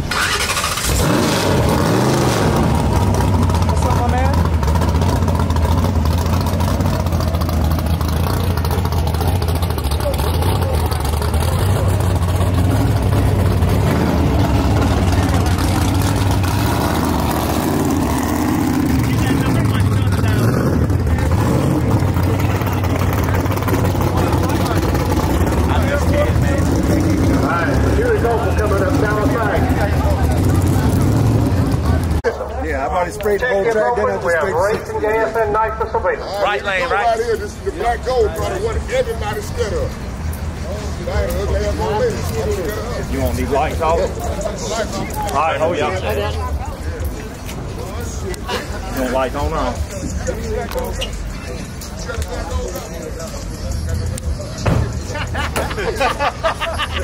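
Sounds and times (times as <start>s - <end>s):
race car engine idling loudly: 0.0s - 32.3s.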